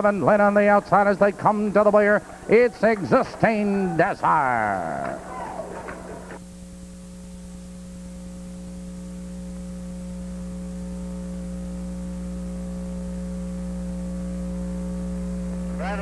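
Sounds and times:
electrical mains hum: 0:00.0 - 0:16.0.

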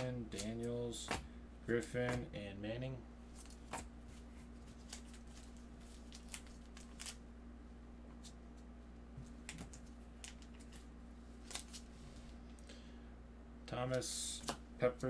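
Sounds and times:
steady low hum: 0:00.0 - 0:15.0
trading cards flipped through: 0:09.3 - 0:11.9.

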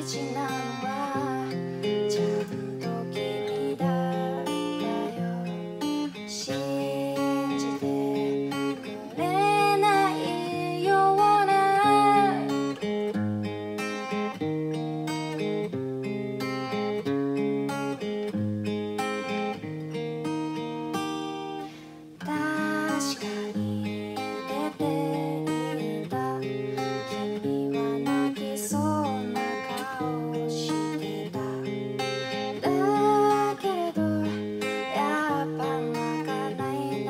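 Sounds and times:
woman singing: 0:00.0 - 0:12.9, 0:22.2 - 0:37.0
acoustic guitar strumming: 0:00.0 - 0:37.0.

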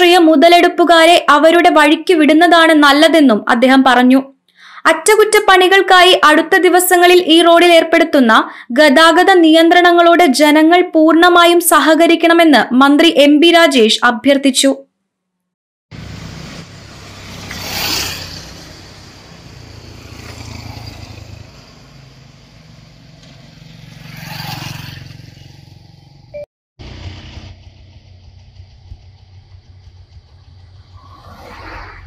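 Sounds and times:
cars driving past: 0:16.0 - 0:32.0
motor scooters driving past: 0:16.0 - 0:32.0
motorcycles driving past: 0:16.0 - 0:32.0.

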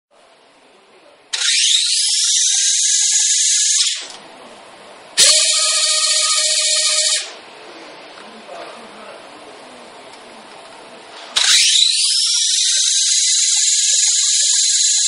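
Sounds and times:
electric motors whining: 0:01.3 - 0:04.2, 0:05.2 - 0:07.4, 0:11.3 - 0:15.0.

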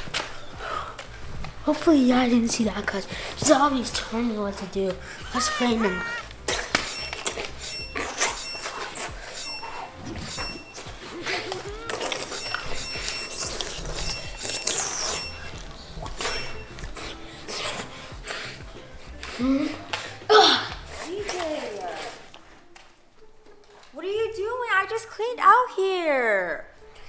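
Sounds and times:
music: 0:00.0 - 0:27.0.

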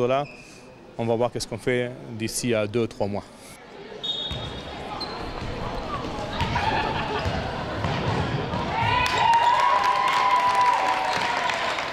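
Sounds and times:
voices of players and spectators: 0:00.0 - 0:10.0.

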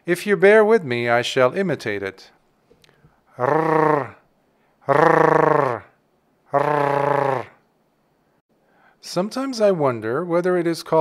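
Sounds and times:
man making rolled trills: 0:03.4 - 0:04.2, 0:04.8 - 0:05.9, 0:06.5 - 0:07.6.

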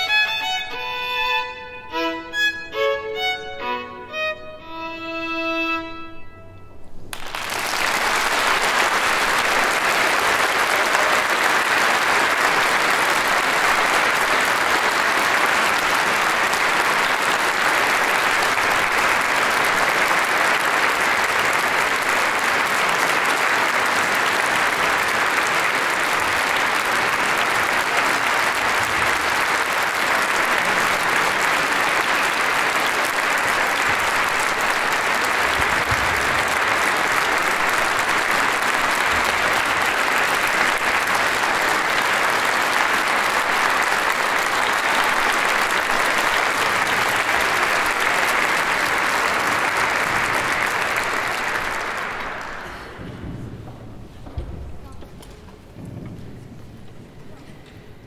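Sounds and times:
audience applauding: 0:07.0 - 0:54.5.

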